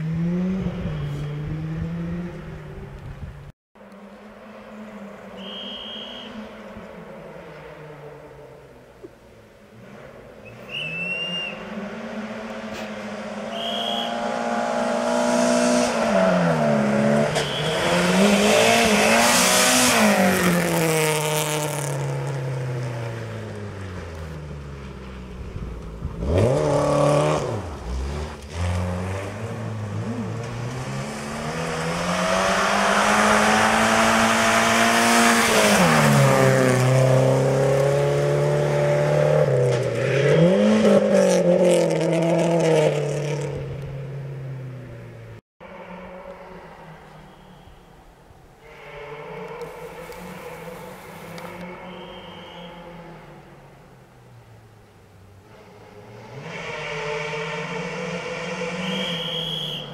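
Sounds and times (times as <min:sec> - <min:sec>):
rally car engine revving: 0:00.0 - 0:03.0, 0:09.7 - 0:24.4, 0:25.3 - 0:45.0, 0:55.4 - 0:59.9.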